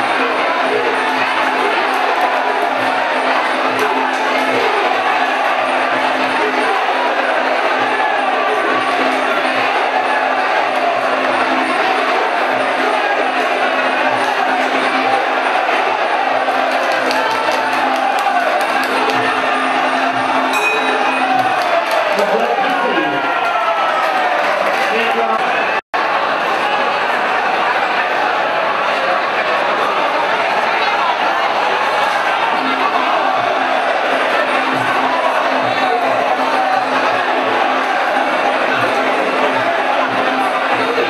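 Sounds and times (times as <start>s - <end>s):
crowd noise: 0.0s - 41.0s.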